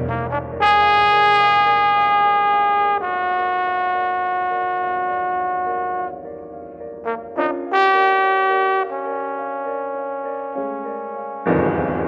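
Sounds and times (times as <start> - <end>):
jazz horns holding notes: 0.0 - 6.2, 7.0 - 11.5.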